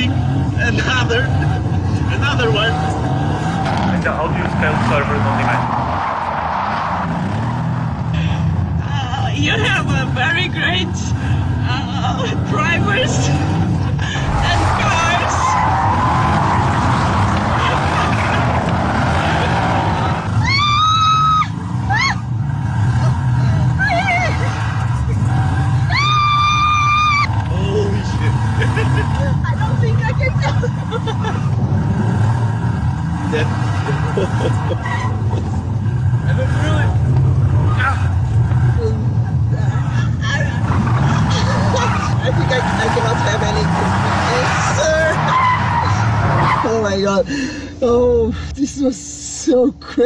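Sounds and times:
passenger talking: 0.0 - 6.1, 8.1 - 26.2, 27.3 - 31.9, 32.6 - 50.0
car engine revving high: 0.0 - 47.0
tyres spinning on pavement: 0.1 - 47.6.

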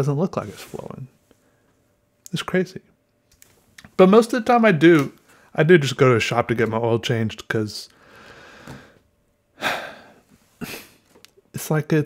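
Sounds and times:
sharp intake of breath: 8.0 - 9.0.

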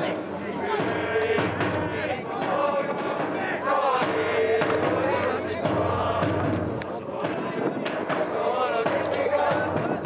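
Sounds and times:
players yelling calls: 0.0 - 10.0.

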